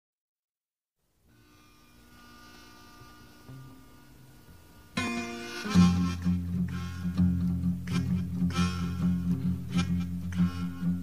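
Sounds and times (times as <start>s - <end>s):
faint hiss: 1.0s - 11.0s
steady electrical hum: 1.0s - 11.0s.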